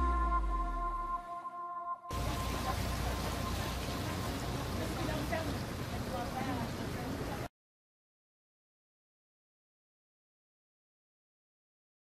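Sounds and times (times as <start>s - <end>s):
steady hissing noise: 2.1s - 7.4s.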